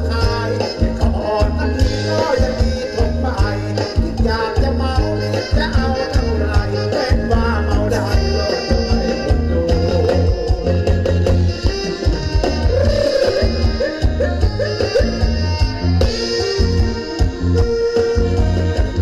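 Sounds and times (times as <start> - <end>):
band playing dance music: 0.0 - 19.0.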